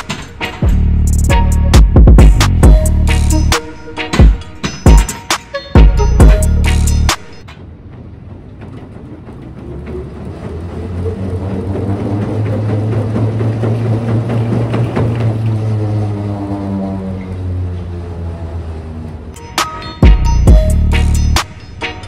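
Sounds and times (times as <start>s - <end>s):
treadmill belt humming: 7.5s - 16.2s.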